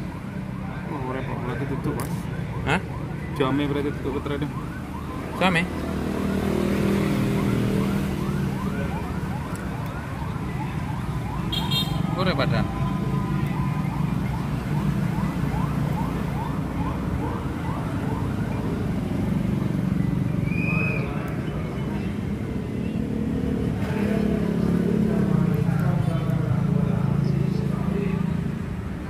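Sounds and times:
traffic rumble: 0.0s - 29.0s.

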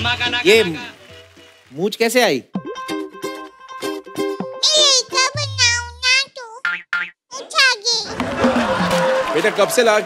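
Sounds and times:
boy talking in sing-song voice: 4.6s - 6.6s, 7.3s - 8.1s.

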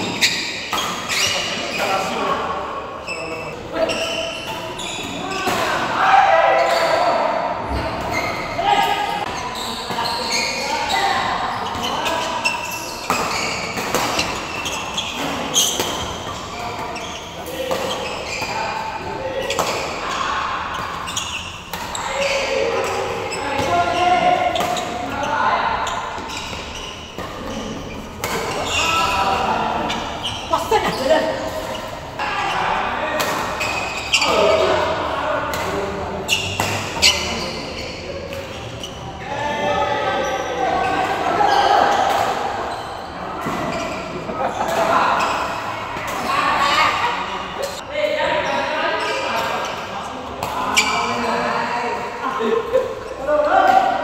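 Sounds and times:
people's voices echoing: 1.1s - 54.0s.

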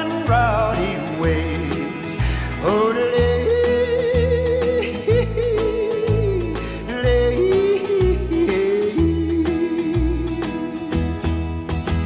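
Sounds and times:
man yodeling: 0.0s - 10.8s
low bass notes: 0.2s - 12.0s.

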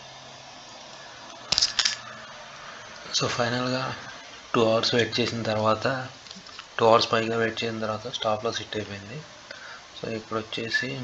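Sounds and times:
faint hum: 0.0s - 11.0s
low hiss: 0.0s - 11.0s.

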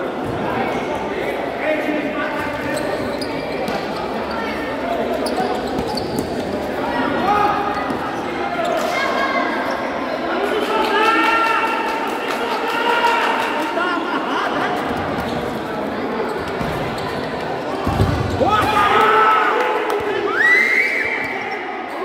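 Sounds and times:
spectators chattering: 0.0s - 22.0s
players shouting: 17.9s - 22.0s.

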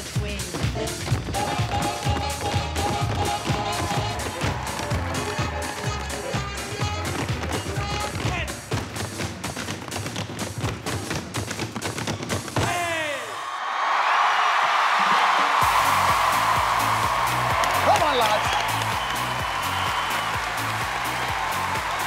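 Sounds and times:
loud backing track: 0.0s - 12.9s, 15.3s - 22.0s
tap shoes striking plinths: 0.5s - 12.8s.

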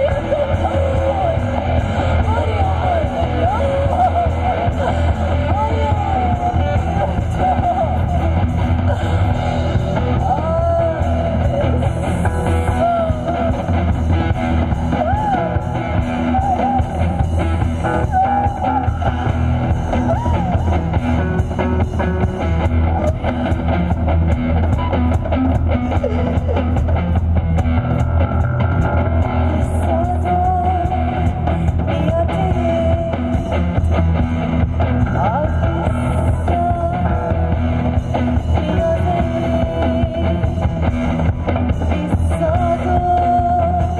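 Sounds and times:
woman singing: 0.0s - 22.0s, 29.4s - 43.9s
bass guitar: 0.0s - 43.9s
drums: 0.0s - 43.9s
electric guitar: 0.0s - 43.9s
live band music: 0.0s - 43.9s.

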